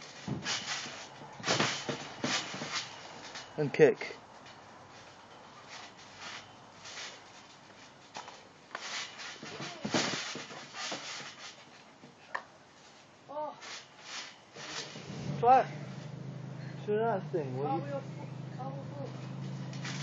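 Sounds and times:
trampoline thuds: 0.0s - 3.6s, 4.4s - 12.2s, 17.1s - 20.0s.

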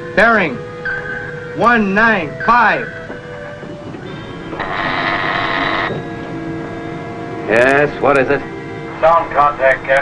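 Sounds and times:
background music chords: 0.0s - 10.0s
telephone buzzing: 4.1s - 6.3s.

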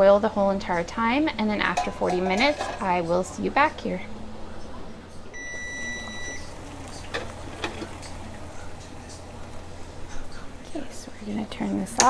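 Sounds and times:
kitchen timer beep: 5.4s - 6.5s
low steady hum: 5.4s - 12.0s.

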